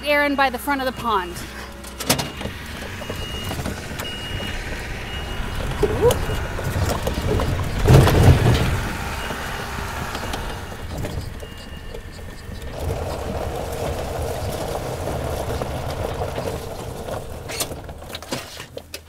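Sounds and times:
utility vehicle engine running: 0.0 - 19.0
reverse alarm beeps: 0.7 - 12.6.

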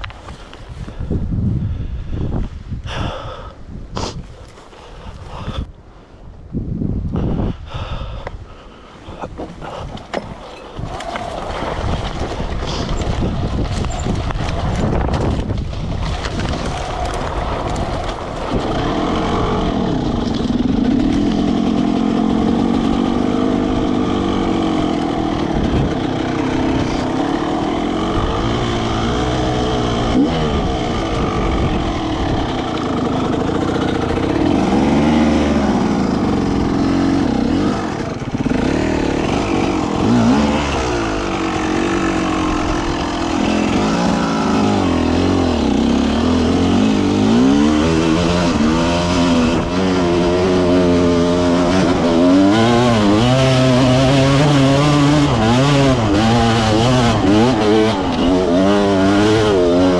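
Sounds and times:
dirt bike engine revving: 10.2 - 59.9.

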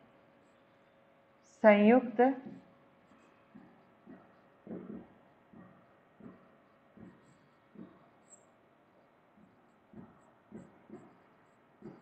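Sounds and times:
woman speaking: 1.6 - 2.5
stylus writing on whiteboard: 2.4 - 12.0.

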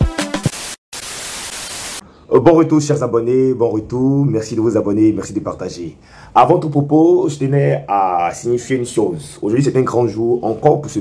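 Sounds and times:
white noise static hiss: 0.6 - 2.9.

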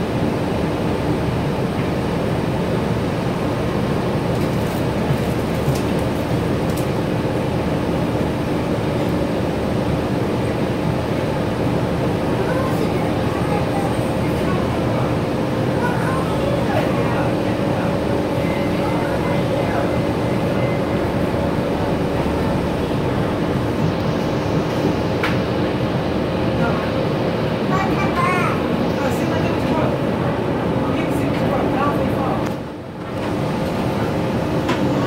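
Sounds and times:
diesel bus engine rumble: 0.0 - 35.0
road noise: 2.4 - 35.0.

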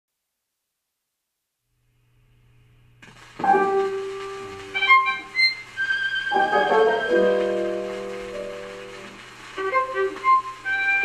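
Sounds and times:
record surface hiss: 0.1 - 11.0
classical instrumental music: 3.4 - 11.0.

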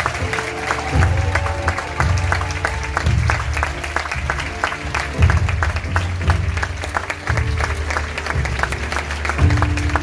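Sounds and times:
audience applause: 0.0 - 10.0
music with deep bass: 0.0 - 10.0.

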